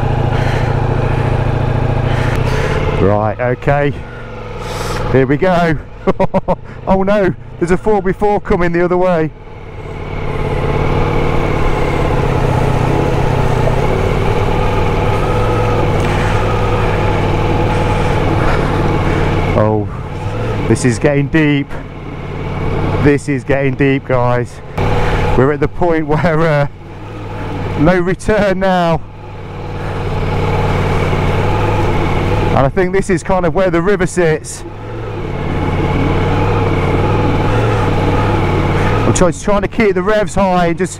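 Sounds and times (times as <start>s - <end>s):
motorcycle engine running: 0.0s - 40.9s.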